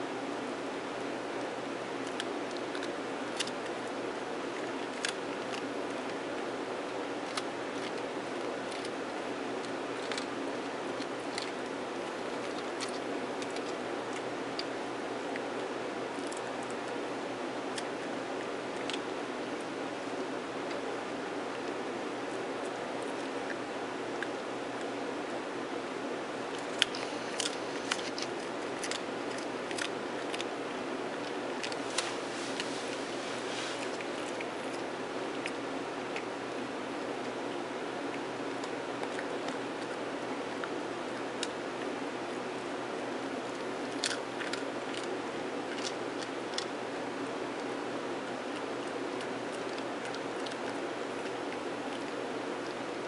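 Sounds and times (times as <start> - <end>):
steady background hiss: 0.0 - 53.0
dog crunching biscuit: 1.9 - 25.0, 26.4 - 53.0.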